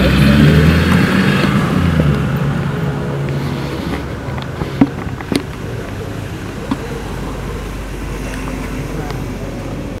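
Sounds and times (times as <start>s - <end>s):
indistinct voices: 0.0s - 10.0s
vehicle engine running low: 0.0s - 10.0s.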